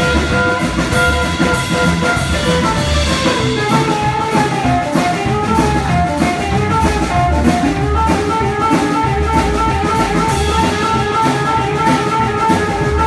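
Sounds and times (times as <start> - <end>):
amplified harmonica: 0.0 - 13.0
blues band playing: 0.0 - 13.0
drum kit cymbal beat: 0.0 - 13.0
electric guitar: 0.0 - 13.0
upright bass: 0.0 - 13.0.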